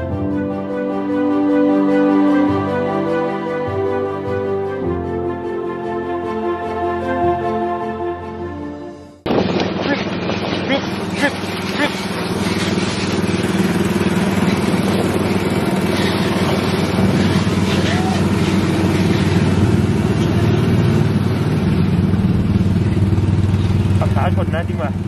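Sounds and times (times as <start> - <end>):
small engine running: 9.3 - 25.0.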